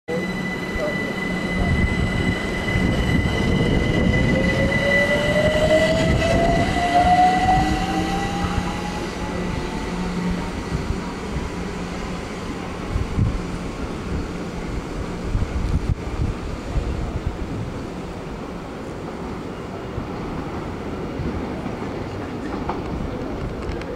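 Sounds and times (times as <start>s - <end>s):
steady high tone: 0.1s - 13.0s
train wheels rumbling on track: 0.2s - 23.9s.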